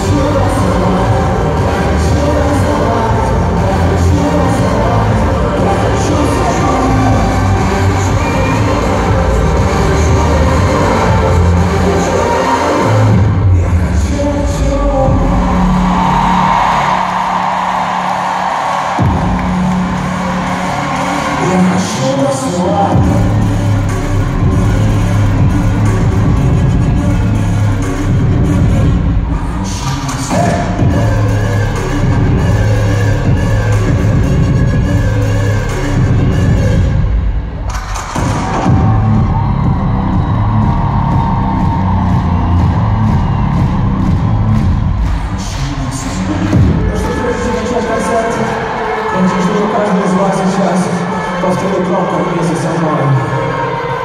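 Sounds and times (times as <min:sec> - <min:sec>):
crowd noise: 0:00.0 - 0:54.0
pop-dance music over sound system: 0:00.0 - 0:54.0.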